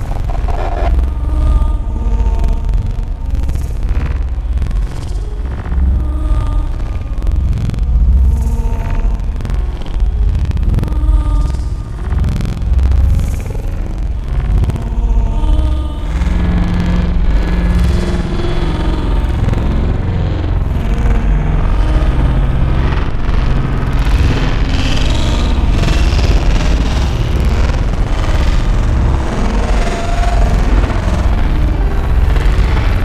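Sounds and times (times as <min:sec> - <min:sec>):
held low synth tones: 0:00.0 - 0:02.4
dark experimental electronic music: 0:00.0 - 0:03.0
noisy upper texture: 0:00.0 - 0:03.2
low rumble: 0:00.0 - 0:12.2, 0:13.0 - 0:33.0.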